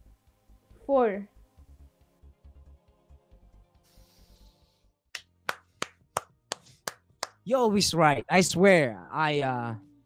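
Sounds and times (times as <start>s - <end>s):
person clapping hands: 5.1s - 7.4s.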